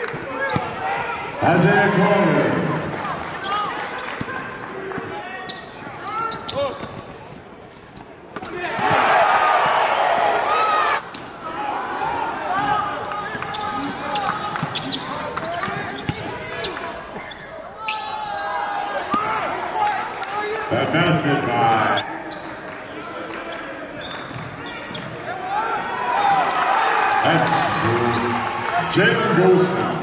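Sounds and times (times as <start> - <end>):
people talking and shouting: 0.0 - 30.0
sneakers squeaking: 0.2 - 1.4, 2.9 - 9.0, 12.6 - 19.3, 21.9 - 23.0, 23.8 - 25.3.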